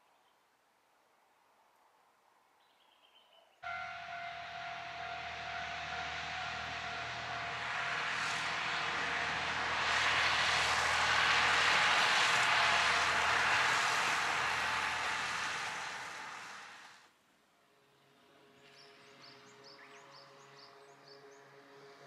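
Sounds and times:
diesel railcar passing: 3.6s - 17.1s
steady whine: 3.6s - 17.1s
wheels rumbling on rails: 3.6s - 17.1s.

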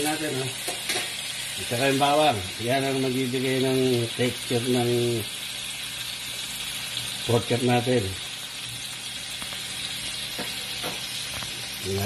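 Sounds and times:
meat sizzling in a skillet: 0.0s - 12.0s.

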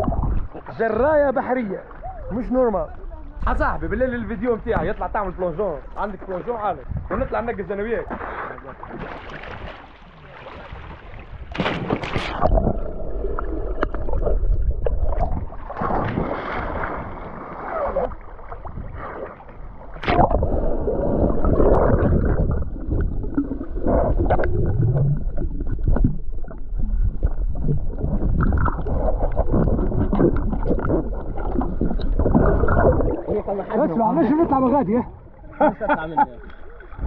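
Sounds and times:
underwater water churning: 0.0s - 2.3s, 4.9s - 35.6s.

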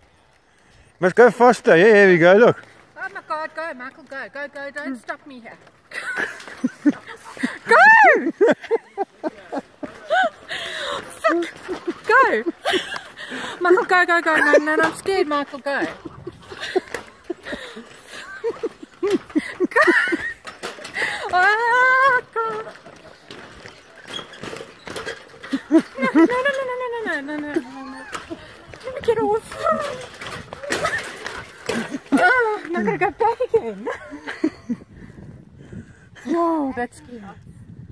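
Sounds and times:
footsteps on wooden bridge slats: 2.5s - 33.6s
woman giggling nervously: 5.9s - 14.8s, 15.7s - 23.6s, 33.8s - 35.0s
woman's frightened cry: 7.4s - 8.4s
woman squealing: 7.5s - 8.4s.

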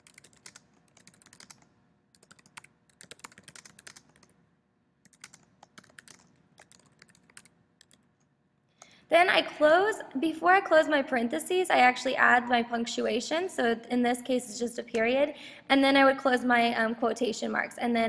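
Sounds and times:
typing on computer keyboard: 0.0s - 4.4s, 5.0s - 8.1s.

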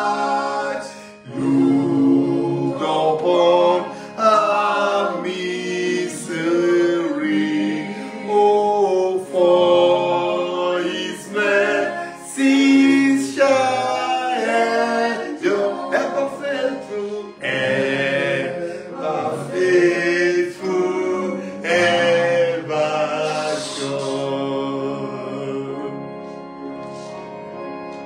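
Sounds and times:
man singing a hymn: 0.0s - 26.2s.

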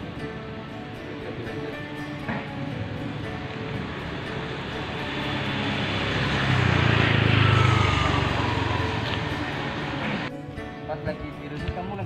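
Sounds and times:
motor scooter passing: 2.6s - 10.3s.

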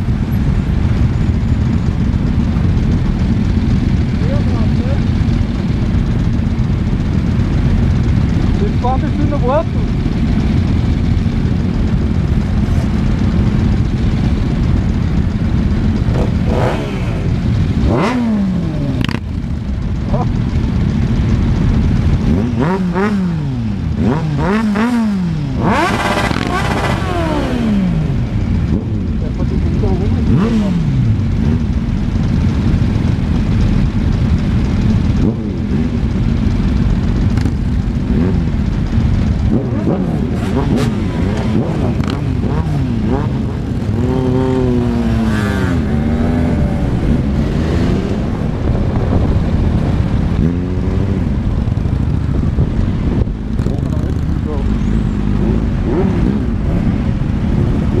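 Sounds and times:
motorcycle engines revving: 0.0s - 58.0s
wind rumble: 0.0s - 58.0s.

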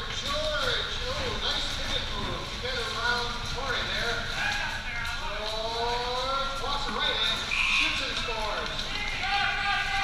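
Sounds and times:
players calling and shouting: 6.8s - 10.0s.

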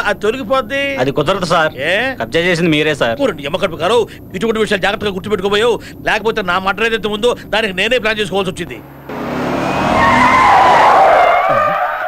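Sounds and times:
car tyres screeching: 6.9s - 12.0s.

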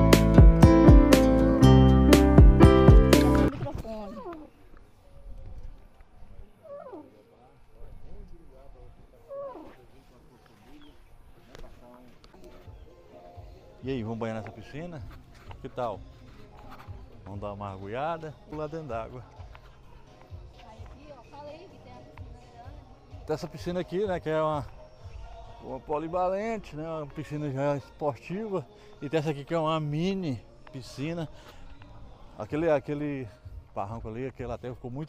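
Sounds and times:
faint distant voices: 3.5s - 35.0s
faint animal cries: 6.6s - 7.2s, 9.2s - 9.9s.

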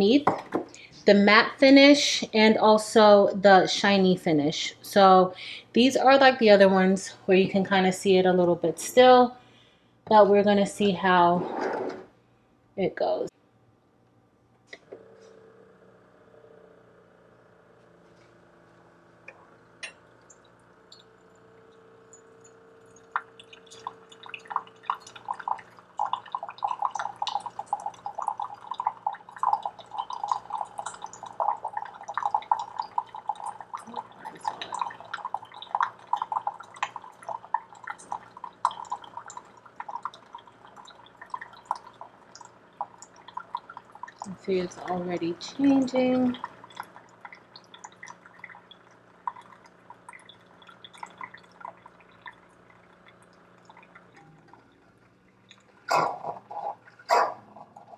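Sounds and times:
coffee maker humming: 14.7s - 57.9s
hot water gurgling into a mug: 19.5s - 57.0s.

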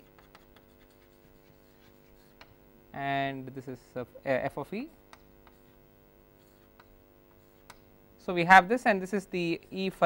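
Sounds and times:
chalk writing on blackboard: 0.0s - 2.5s, 5.2s - 7.8s.

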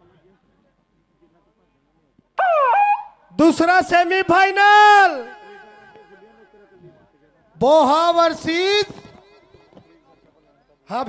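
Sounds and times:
high-pitched drawn-out call: 2.4s - 3.3s.

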